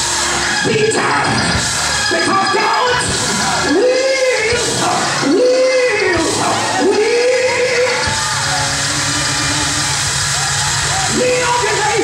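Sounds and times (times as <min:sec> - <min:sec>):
live gospel music: 0:00.0 - 0:12.0
voices yelling and singing: 0:00.0 - 0:12.0.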